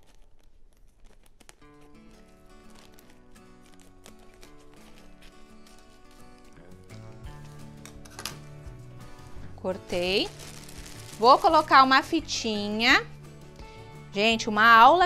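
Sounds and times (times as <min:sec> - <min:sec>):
scissors cutting plastic bag: 0:00.0 - 0:06.8, 0:09.2 - 0:12.1
soft background music: 0:00.1 - 0:15.0.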